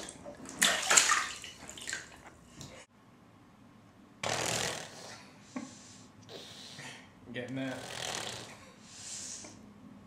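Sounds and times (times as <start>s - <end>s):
bathwater splashing: 0.0s - 2.8s.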